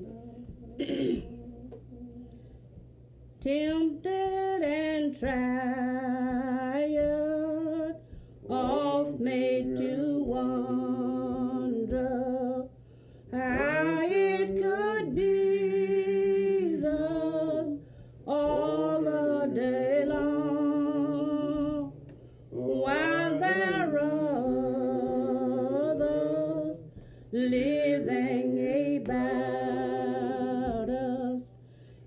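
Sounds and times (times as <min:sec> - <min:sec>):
person singing wordless tune: 0:00.0 - 0:02.4, 0:03.4 - 0:31.6.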